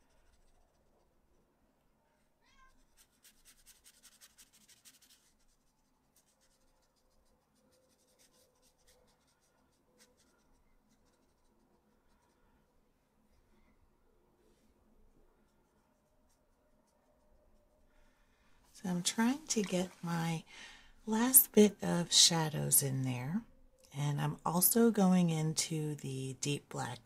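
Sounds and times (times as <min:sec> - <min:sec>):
brush strokes on paper: 0:00.0 - 0:01.0, 0:02.8 - 0:12.7, 0:14.4 - 0:21.6.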